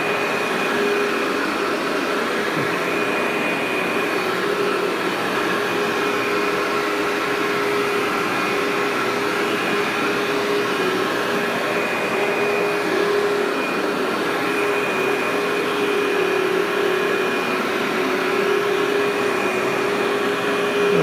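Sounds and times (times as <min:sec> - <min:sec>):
upright vacuum on carpet: 0:00.0 - 0:21.0.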